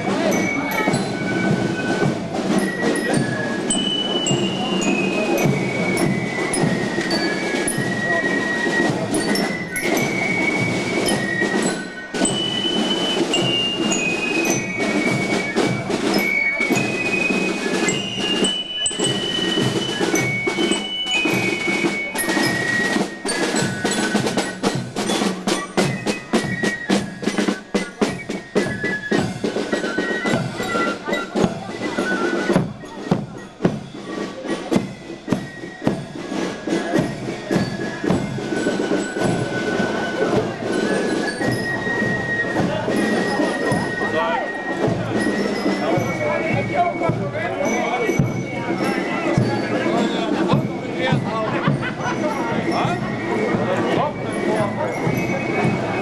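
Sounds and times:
high flutes playing melody: 0.0s - 56.0s
snare drum strokes: 0.0s - 56.0s.

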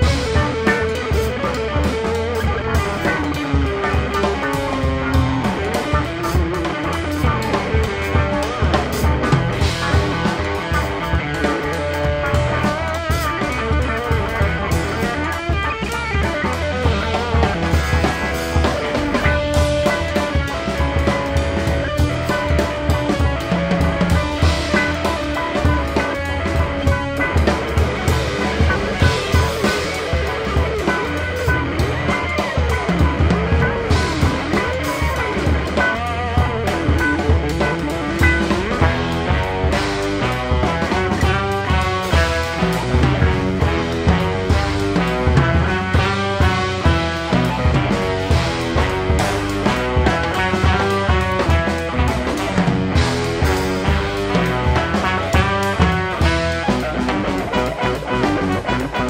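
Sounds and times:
drum kit: 0.0s - 59.0s
guitar: 0.0s - 59.0s
heavy low end bass: 0.0s - 59.0s.

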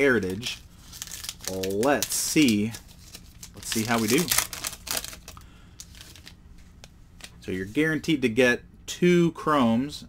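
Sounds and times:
wrapper tearing and crinkling: 0.2s - 6.4s.

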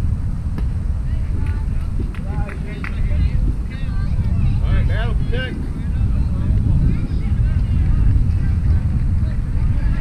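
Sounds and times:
wind buffeting microphone: 0.0s - 10.0s
distant indistinct voices: 0.6s - 10.0s.

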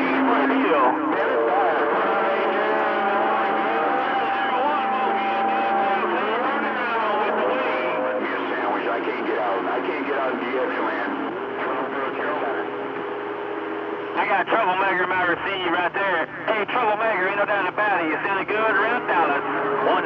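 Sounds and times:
garbled voices over radio: 0.0s - 12.8s, 14.2s - 20.0s
steady radio carrier tones: 0.0s - 20.0s.

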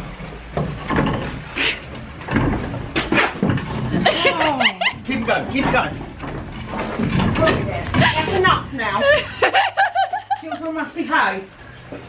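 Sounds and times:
woman laughing and talking: 3.9s - 5.1s, 7.8s - 11.0s.

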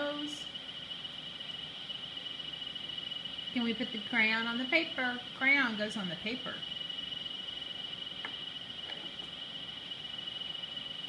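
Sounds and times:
steady high-pitched tone: 0.0s - 11.0s.

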